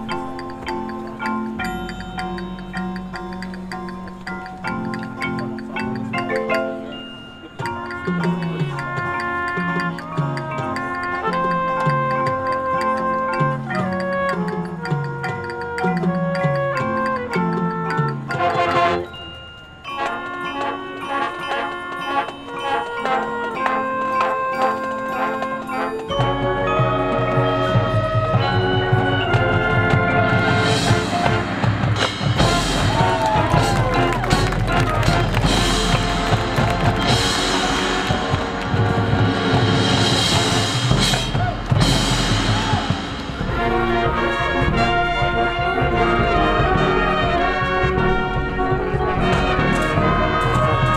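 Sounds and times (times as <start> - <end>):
mallet percussion playing: 0.0 - 50.9
marching band brass and drums: 0.0 - 50.9.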